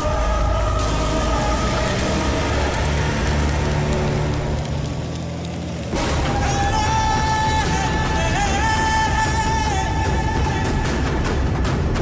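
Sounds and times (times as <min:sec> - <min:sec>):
dramatic background score: 0:00.0 - 0:05.3, 0:05.9 - 0:12.0
sustained low drone: 0:00.0 - 0:11.0.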